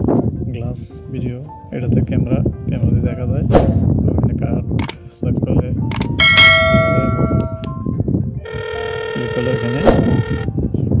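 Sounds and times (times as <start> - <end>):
electronic ringing tone: 6.2 - 10.5.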